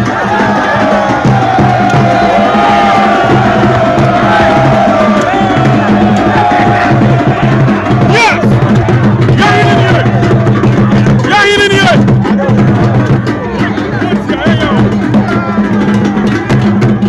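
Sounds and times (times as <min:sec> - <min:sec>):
crowd noise: 0:00.0 - 0:17.0
drumming steady beat: 0:00.0 - 0:17.0.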